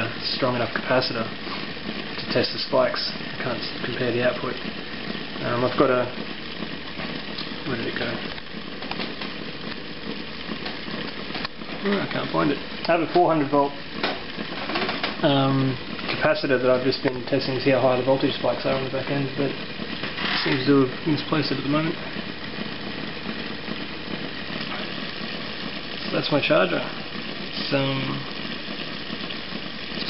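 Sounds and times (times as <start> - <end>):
machine hum: 0.0 - 30.0
rotor spinning past coils: 0.0 - 30.0.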